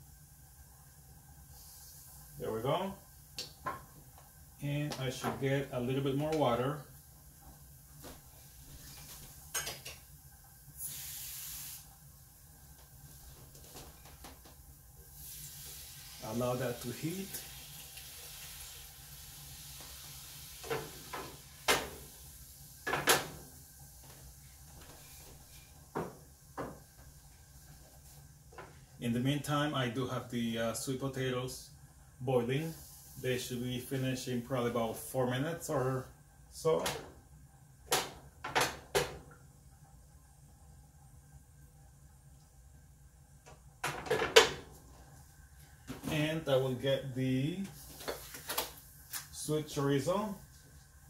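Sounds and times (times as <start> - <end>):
faint steady hum: 0.0 - 51.0
frying pan sizzling hiss: 1.4 - 7.0, 8.0 - 13.4, 14.7 - 31.2, 32.4 - 36.0
kitchen knocks and clatters: 9.5 - 10.0, 22.8 - 23.5, 37.9 - 39.3, 43.8 - 44.7.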